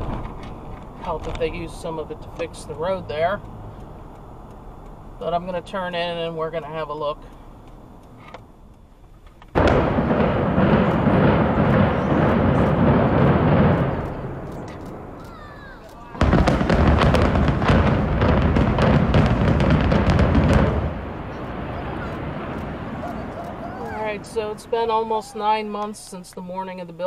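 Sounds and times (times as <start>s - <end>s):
rumble of building collapsing: 9.6s - 15.2s, 16.0s - 25.3s
demolition charges cracking: 9.6s - 26.1s.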